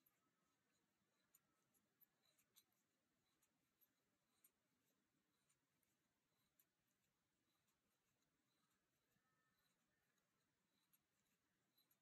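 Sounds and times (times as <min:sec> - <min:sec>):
crochet hook ticking: 0:00.0 - 0:12.0.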